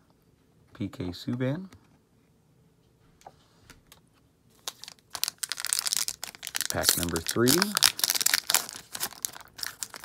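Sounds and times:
foil pack rustling: 0:04.6 - 0:10.0.

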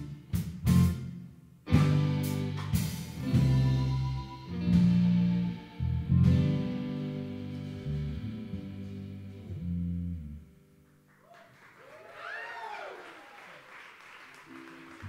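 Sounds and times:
electric guitar and bass chords: 0:00.0 - 0:11.1.

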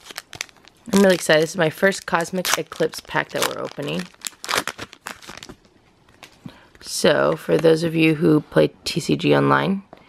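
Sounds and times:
foil wrapper crinkling: 0:00.0 - 0:06.7.

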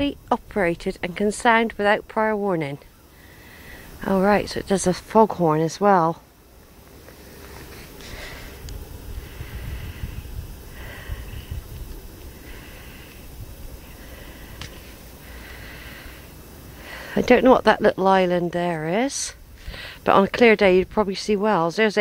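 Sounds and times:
person breathing: 0:03.1 - 0:04.0, 0:07.3 - 0:17.4, 0:19.6 - 0:20.1
wind rumble on microphone: 0:07.6 - 0:15.2, 0:19.3 - 0:21.3.

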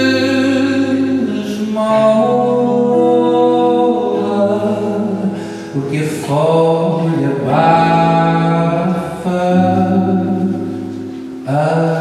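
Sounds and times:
acoustic guitar: 0:00.0 - 0:12.0
man singing long notes: 0:00.0 - 0:12.0.

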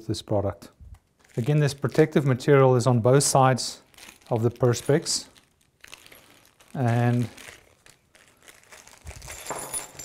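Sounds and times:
plastic bag crinkling: 0:00.9 - 0:10.0
metal hardware clinking on wood: 0:09.3 - 0:10.0.

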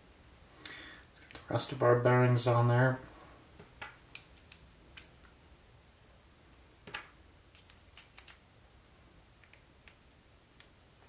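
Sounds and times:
small metal parts clicking: 0:07.5 - 0:08.4.

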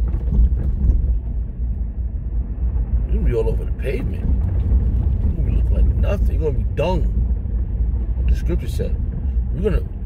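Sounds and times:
road and engine noise in car: 0:00.0 - 0:10.0.

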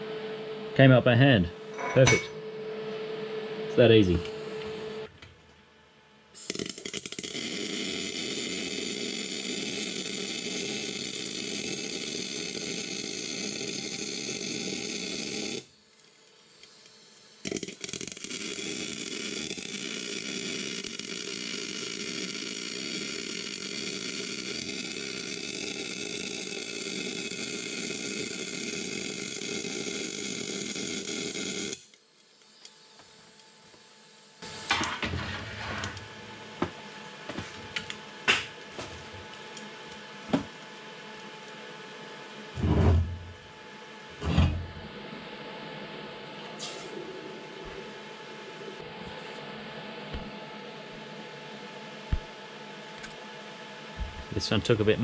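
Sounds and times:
crackling arc welding: 0:06.3 - 0:42.6.

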